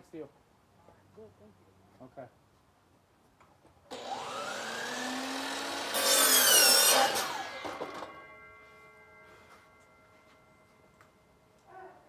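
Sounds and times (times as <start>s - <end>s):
chainsaw cutting into tree trunk: 3.9s - 8.1s.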